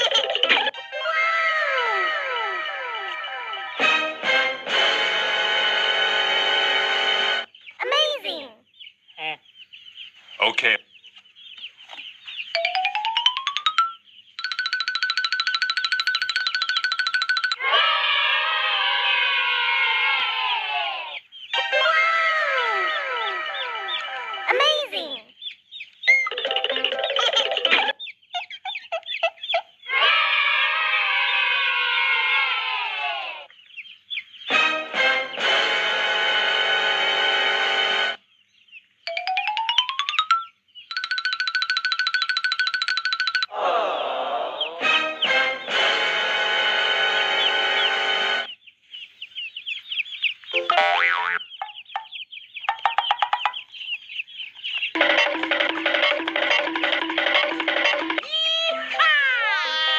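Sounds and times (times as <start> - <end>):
background music: 0.0 - 7.6, 21.5 - 25.1, 34.4 - 38.3, 39.1 - 48.5, 55.0 - 59.9.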